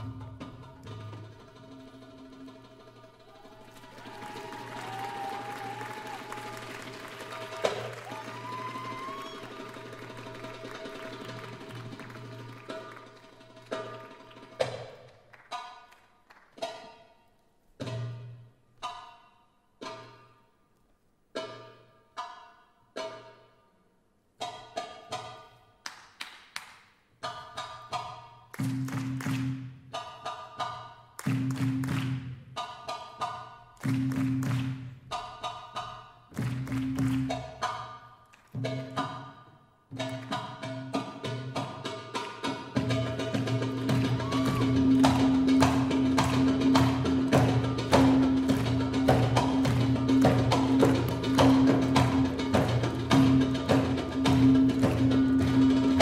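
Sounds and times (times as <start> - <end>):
soft live ensemble music: 0.0 - 56.0
audience applause and cheering: 3.2 - 13.7, 36.4 - 37.4, 43.7 - 52.8.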